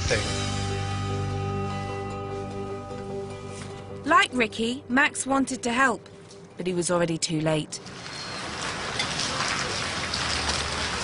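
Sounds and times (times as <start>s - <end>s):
rain falling: 7.8s - 11.0s.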